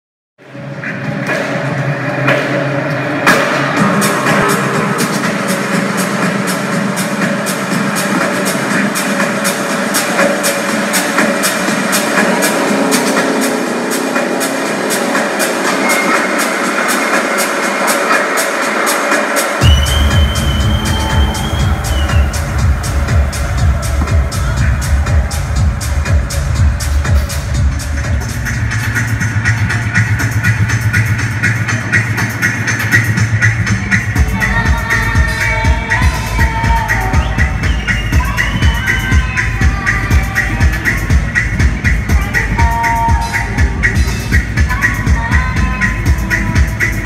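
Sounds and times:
heavy bass: 0.4 - 47.0
techno dj mix: 0.5 - 47.0.

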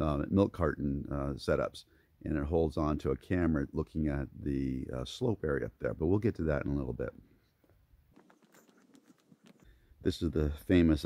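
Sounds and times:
faint soft footsteps: 7.1 - 9.7.

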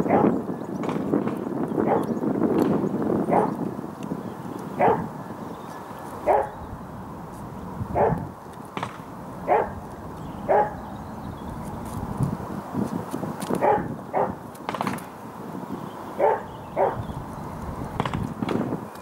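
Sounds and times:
dog barking: 0.0 - 0.4, 1.8 - 2.1, 3.3 - 3.6, 4.8 - 5.1, 6.2 - 6.6, 8.0 - 8.2, 9.5 - 9.8, 10.5 - 10.8, 13.6 - 14.4, 16.2 - 17.0.

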